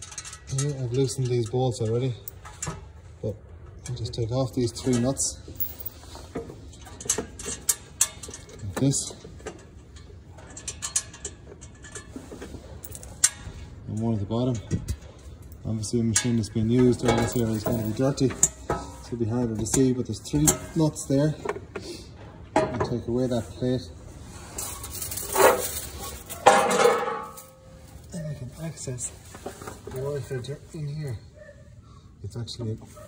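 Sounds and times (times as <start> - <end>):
metal plate clanking: 25.1 - 27.7.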